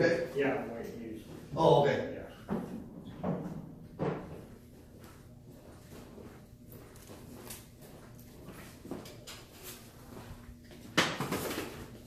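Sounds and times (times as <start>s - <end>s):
footsteps on hard floor: 2.5s - 9.2s.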